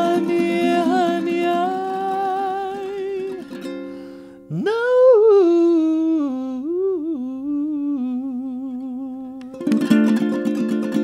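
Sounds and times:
ukulele chord: 0.0 - 4.0, 9.4 - 11.0
woman humming: 4.5 - 9.6.

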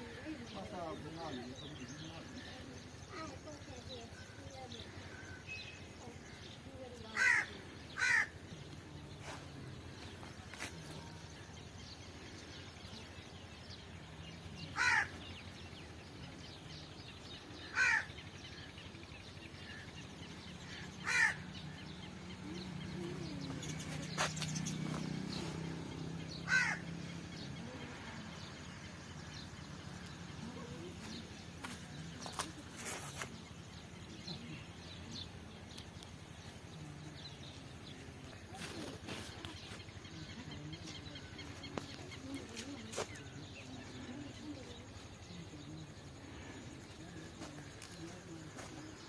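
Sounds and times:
birds calling: 0.0 - 49.0
faint distant voices: 0.0 - 49.0
crow cawing: 7.1 - 8.4, 14.8 - 15.2, 17.6 - 18.2, 20.6 - 21.5, 26.4 - 26.9.

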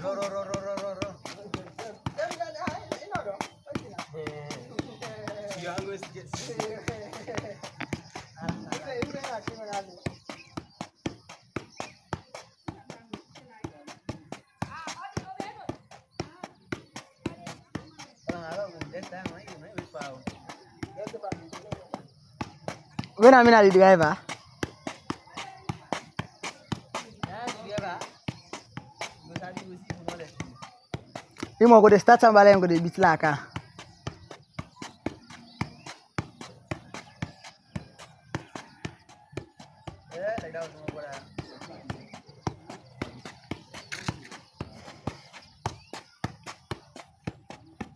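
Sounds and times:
voices talking: 0.0 - 46.6
football tapped by feet: 0.0 - 47.9.

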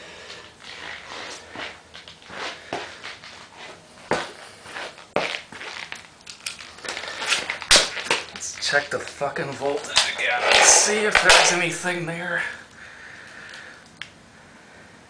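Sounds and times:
clicks and knocks of objects handled: 5.8 - 11.6.

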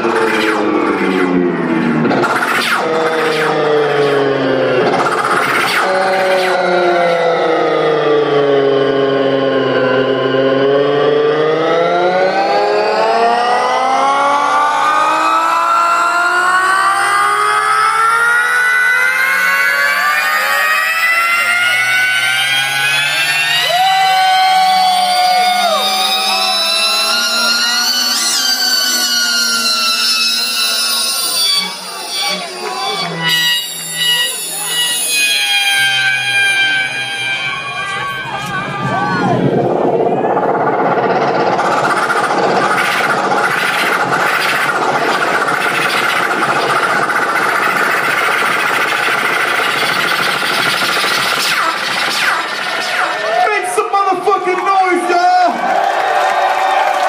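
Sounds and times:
layered tone gliding in pitch: 0.0 - 57.0
sharp hits: 22.6 - 55.1.

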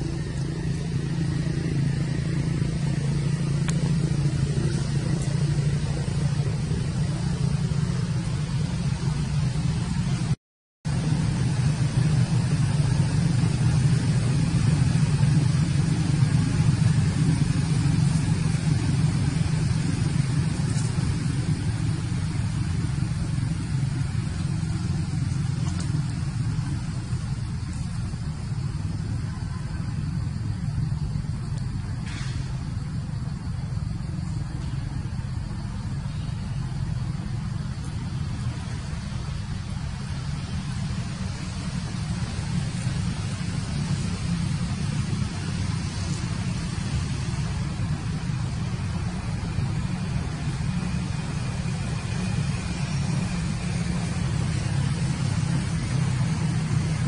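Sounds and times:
steady low rumble: 0.0 - 57.0.

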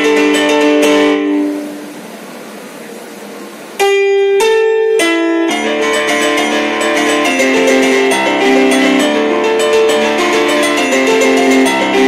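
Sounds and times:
stage piano playing: 0.0 - 12.0.

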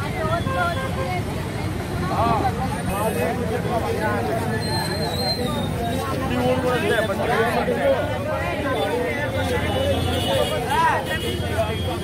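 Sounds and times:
low rumble of street traffic: 0.0 - 12.0
people talking: 0.0 - 12.0.

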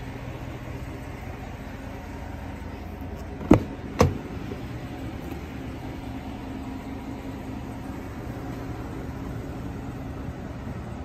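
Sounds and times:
car door clunk: 3.2 - 4.6.

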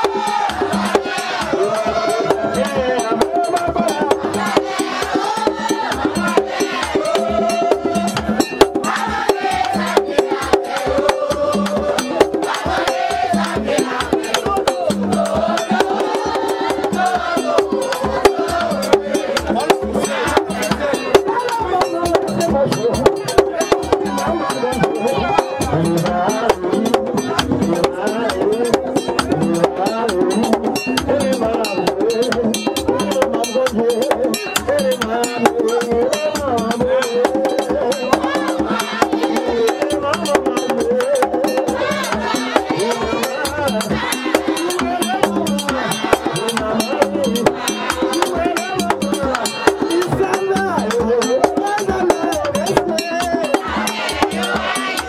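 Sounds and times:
drums beating fast rhythm: 0.0 - 55.0
group of voices singing: 0.0 - 55.0.

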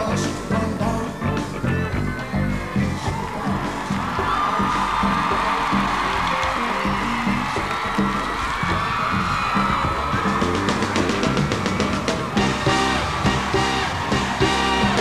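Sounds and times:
audience screaming and cheering: 0.0 - 15.0
live pop-rock band: 0.0 - 15.0.

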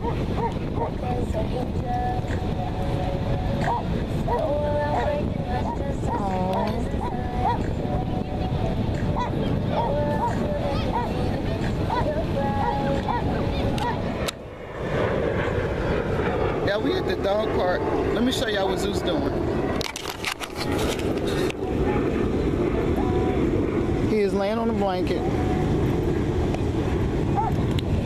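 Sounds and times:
faint distant voices: 0.0 - 19.8
wind rumbling on microphone: 0.0 - 28.0.

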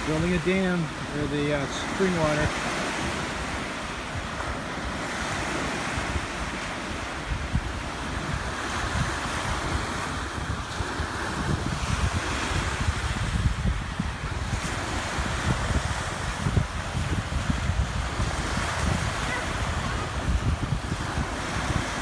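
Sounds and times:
waves breaking on sandy shore: 0.0 - 22.0
wind buffeting microphone: 0.0 - 22.0.

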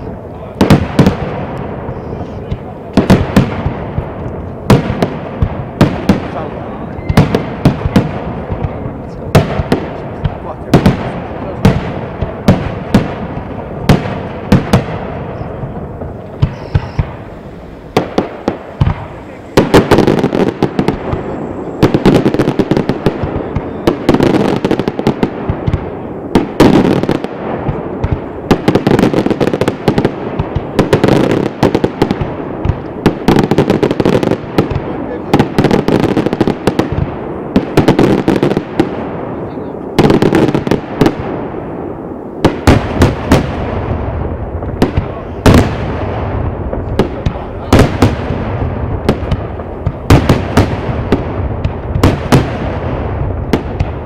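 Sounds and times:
fireworks bursts and bangs: 0.0 - 54.0.

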